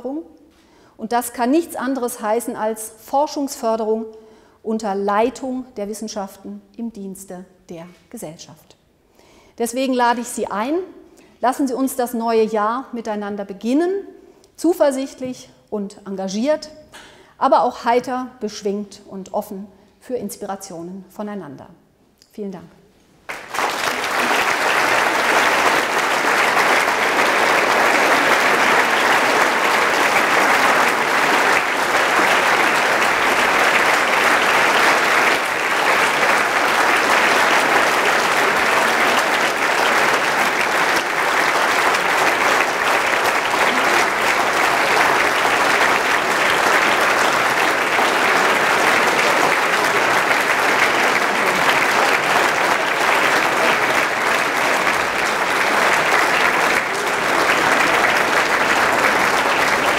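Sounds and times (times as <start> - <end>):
audience applauding: 23.2 - 59.9.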